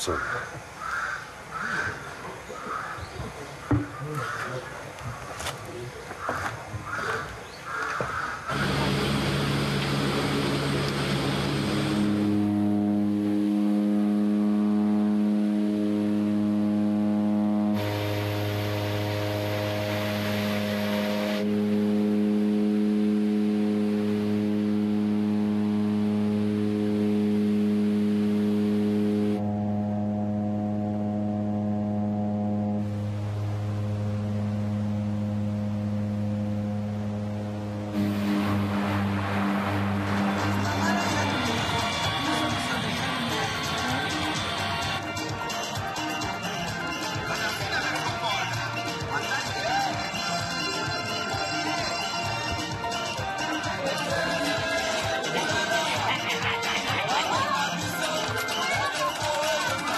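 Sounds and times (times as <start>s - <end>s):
propeller aircraft engines droning: 0.0s - 49.6s.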